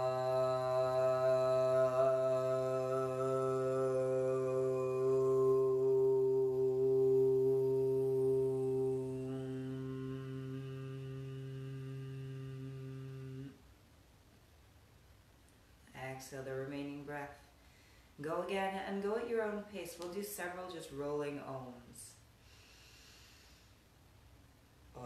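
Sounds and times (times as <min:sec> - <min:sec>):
woman chanting aum: 0:00.0 - 0:13.6.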